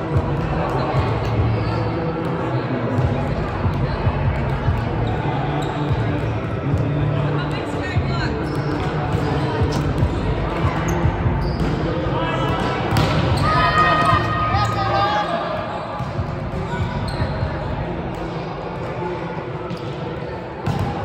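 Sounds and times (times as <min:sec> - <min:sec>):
voices echoing in a hall: 0:00.0 - 0:21.0.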